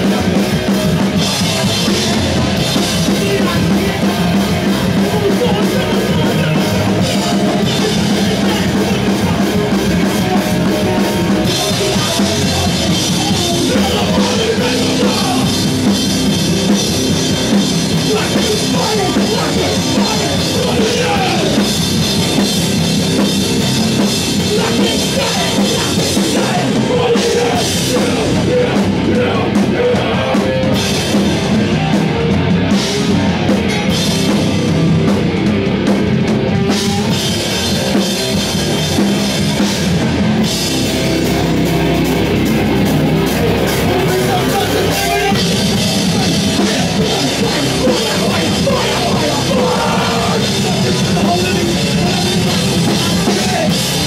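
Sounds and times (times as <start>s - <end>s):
drum kit: 0.0s - 54.0s
electric guitar: 0.0s - 54.0s
live rock band playing: 0.0s - 54.0s.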